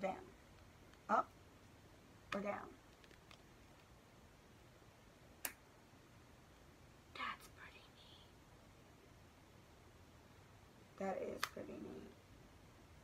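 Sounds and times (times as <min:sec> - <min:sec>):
faint whisper: 0:07.1 - 0:08.4.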